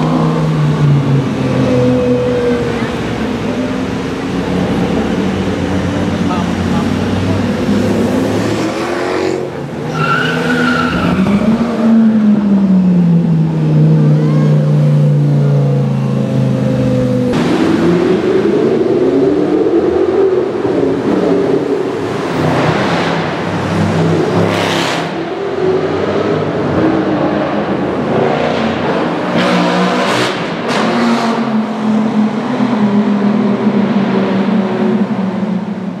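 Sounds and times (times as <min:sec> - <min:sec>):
car engine revving: 0:00.0 - 0:36.0.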